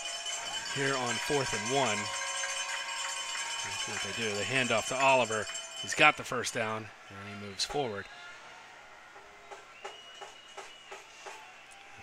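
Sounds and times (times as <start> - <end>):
referee's whistle: 9.4 - 12.0
short sharp claps: 9.5 - 12.0.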